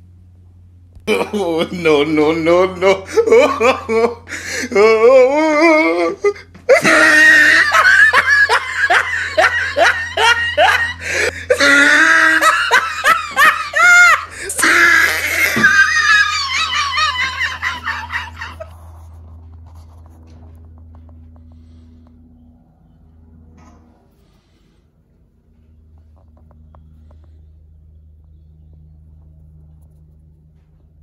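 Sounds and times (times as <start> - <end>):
faint steady hum: 0.0 - 31.0
person laughing hard: 1.0 - 20.0.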